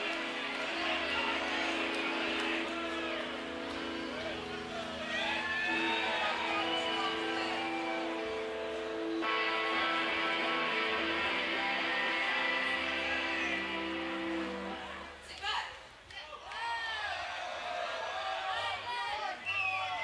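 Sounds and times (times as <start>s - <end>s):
electric guitars playing chords: 0.0s - 15.2s.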